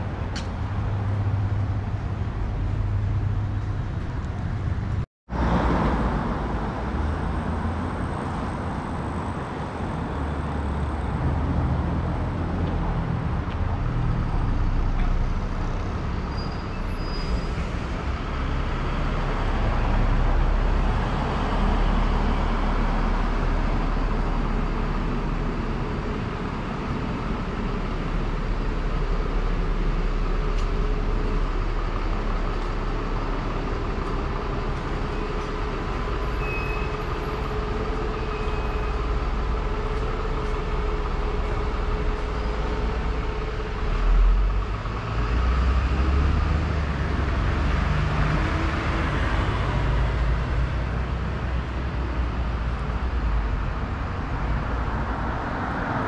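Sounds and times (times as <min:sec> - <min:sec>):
passing car and bus engines: 0:00.0 - 0:56.0.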